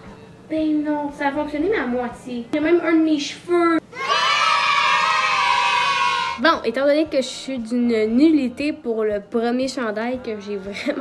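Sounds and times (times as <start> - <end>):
crowd cheering: 4.0 - 6.4.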